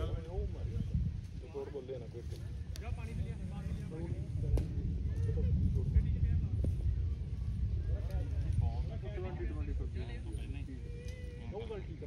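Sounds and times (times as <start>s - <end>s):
faint indistinct voices: 0.0s - 12.0s
wind buffeting microphone: 0.0s - 12.0s.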